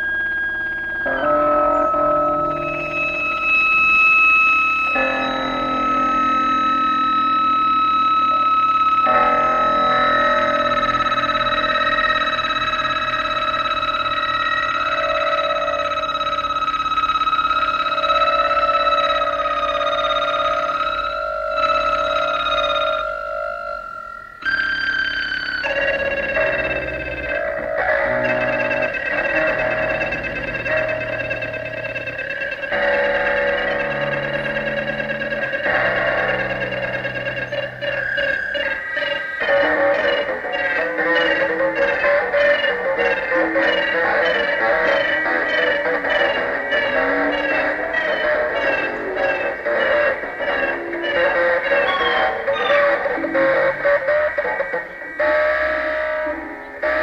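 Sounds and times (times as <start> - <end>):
sustained synthesizer tones: 0.0 - 57.0.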